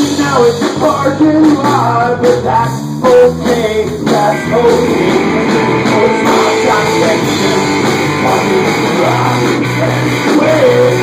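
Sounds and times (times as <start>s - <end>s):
distorted electric guitars: 0.0s - 11.0s
drum kit: 0.0s - 11.0s.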